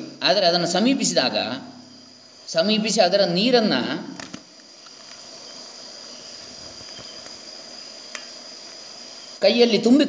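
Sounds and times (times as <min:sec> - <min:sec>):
insects trilling: 0:00.0 - 0:10.0
faint click: 0:08.1 - 0:08.8.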